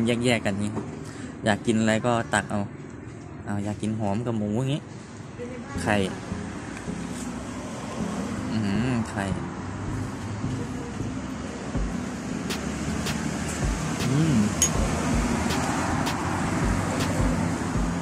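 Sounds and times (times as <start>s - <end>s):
road traffic noise: 0.0s - 18.0s
man murmuring: 14.0s - 14.6s.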